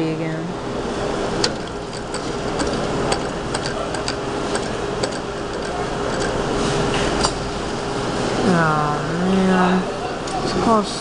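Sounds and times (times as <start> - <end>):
busy store background noise: 0.0 - 11.0
claw machine humming: 0.0 - 11.0.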